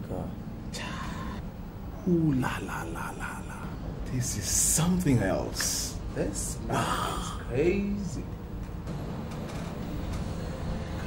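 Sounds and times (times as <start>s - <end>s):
man's wordless exclamation: 6.4s - 8.2s.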